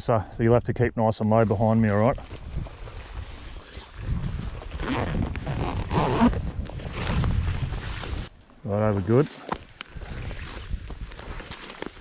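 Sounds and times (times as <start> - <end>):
dry grass swishing against clothing: 2.0 - 4.8, 9.1 - 12.0.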